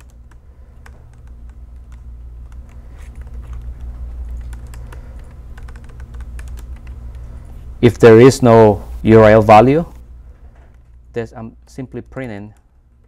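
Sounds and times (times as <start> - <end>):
keyboard typing: 0.0 - 7.5
steady low hum: 0.0 - 13.0.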